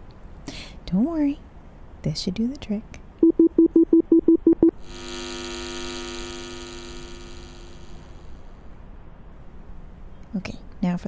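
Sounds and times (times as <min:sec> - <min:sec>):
steady electronic tone: 0:03.2 - 0:08.4.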